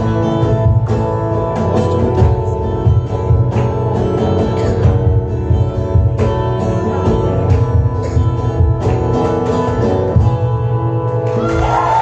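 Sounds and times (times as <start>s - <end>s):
acoustic guitar strumming: 0.0s - 12.0s
cajon beat: 0.0s - 12.0s.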